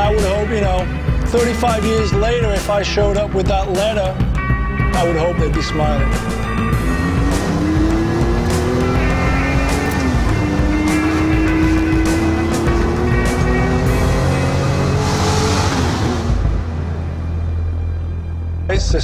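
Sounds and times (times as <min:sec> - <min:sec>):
background music: 0:00.0 - 0:19.0
car engine accelerating: 0:04.2 - 0:17.7.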